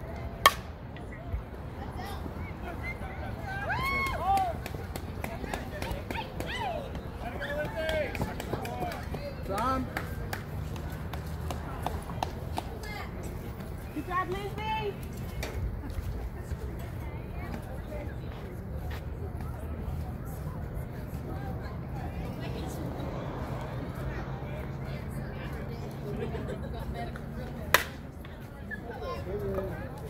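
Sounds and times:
players shouting: 2.7 - 4.9.

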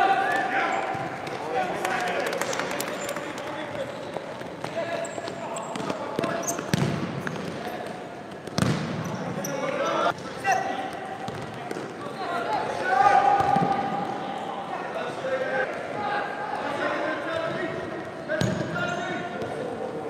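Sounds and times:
ball kicked and bouncing: 5.7 - 7.5, 8.4 - 8.9, 11.3 - 11.9.

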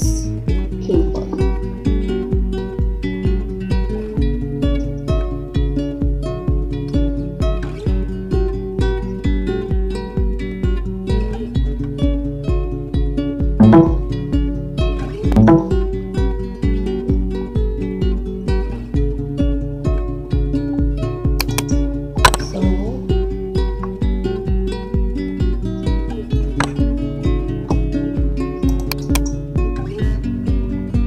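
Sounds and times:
plucked acoustic guitar: 0.0 - 31.0
steady low beat: 13.6 - 14.1, 15.4 - 15.8.

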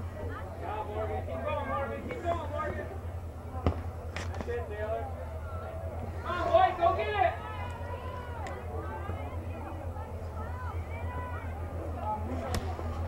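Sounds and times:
distant shouting voices: 0.0 - 13.0
steady low hum: 0.0 - 13.0.

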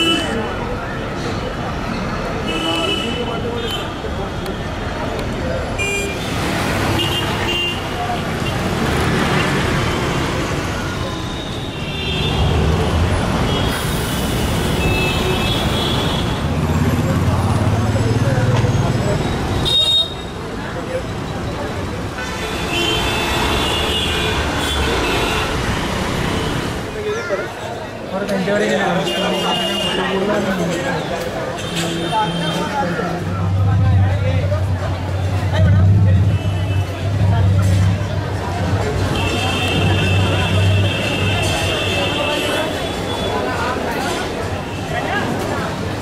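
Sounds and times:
vehicle engines: 0.0 - 46.0.

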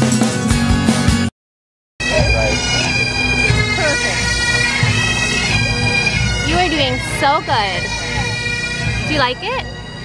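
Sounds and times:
bagpipes playing a tune: 2.0 - 10.0.

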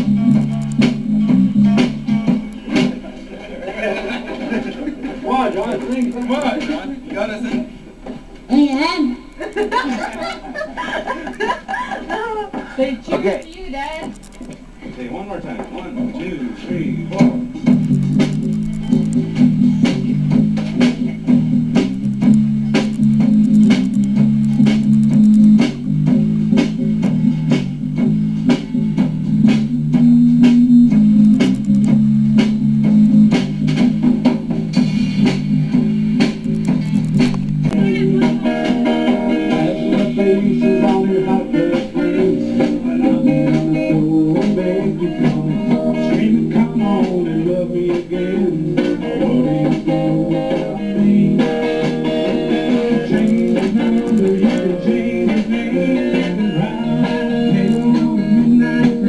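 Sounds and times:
drum kit beat: 0.0 - 59.0
guitars: 0.0 - 59.0.

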